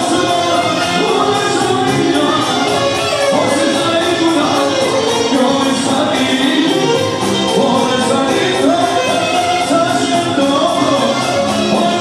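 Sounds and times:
folk dance band playing: 0:00.0 - 0:12.0
man singing into a microphone: 0:00.0 - 0:12.0.

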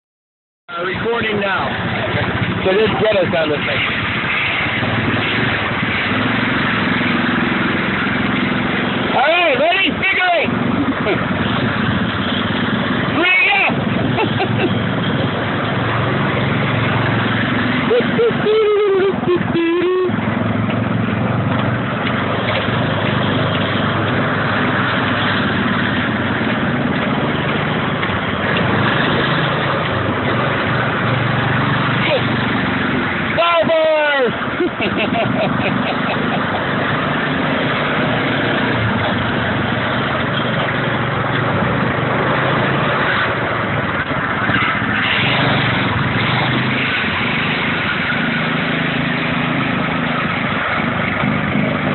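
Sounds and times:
go-kart engines running: 0:00.7 - 0:51.9
riders shouting: 0:13.1 - 0:14.5, 0:33.3 - 0:34.5.

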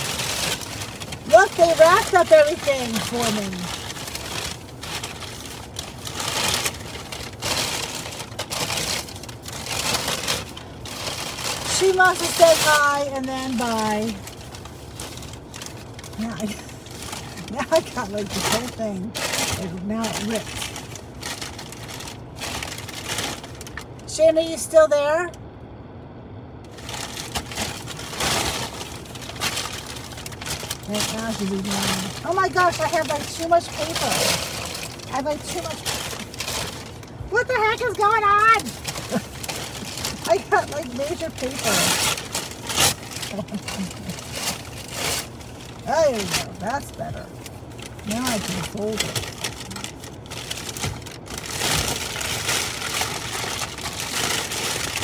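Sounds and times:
packing paper crinkling: 0:00.0 - 0:24.0, 0:26.7 - 0:55.0.

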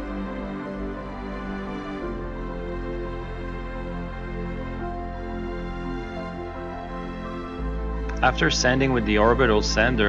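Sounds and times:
sustained chords music: 0:00.0 - 0:10.0.

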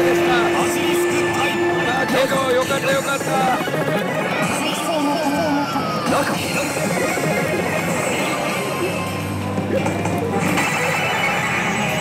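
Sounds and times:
loud din of gaming machines: 0:00.0 - 0:12.0
slot machine electronic jingles: 0:10.4 - 0:12.0.

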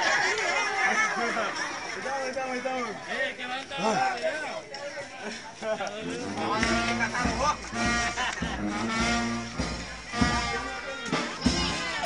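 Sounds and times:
men talking and calling out: 0:00.0 - 0:12.0.

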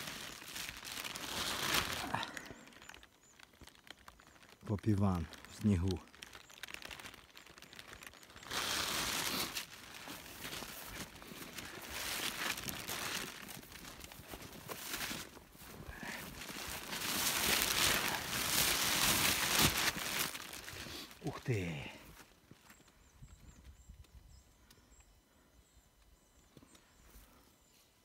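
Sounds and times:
dry grass rustling: 0:00.0 - 0:23.0.

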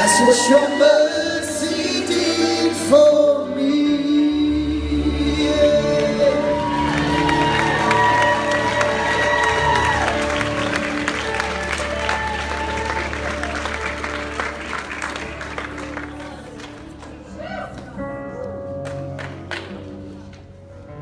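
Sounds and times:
live worship band music: 0:00.0 - 0:21.0
audience clapping: 0:05.9 - 0:18.0, 0:18.8 - 0:20.4.

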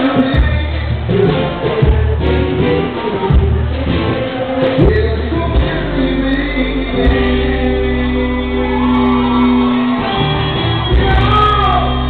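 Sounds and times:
man singing and shouting: 0:00.0 - 0:09.6, 0:10.9 - 0:12.0
live band playing: 0:00.0 - 0:12.0.

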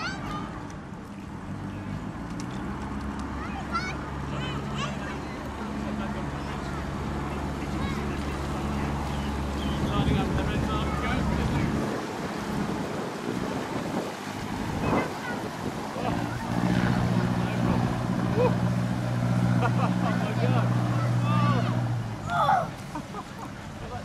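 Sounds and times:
boat engine humming: 0:00.0 - 0:24.0.

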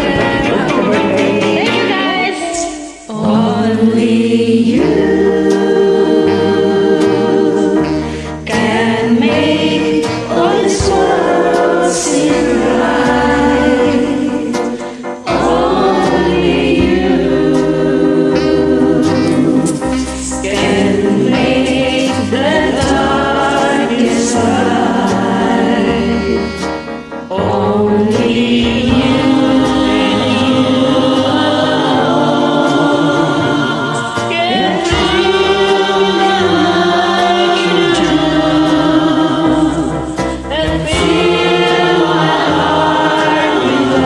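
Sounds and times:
person singing: 0:00.0 - 0:26.6, 0:27.3 - 0:44.0
karaoke backing track: 0:00.0 - 0:44.0.

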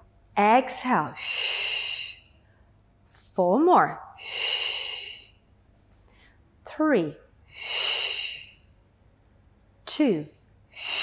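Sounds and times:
woman breathing out: 0:01.2 - 0:02.7, 0:04.2 - 0:05.4, 0:07.5 - 0:08.7, 0:10.7 - 0:11.0.

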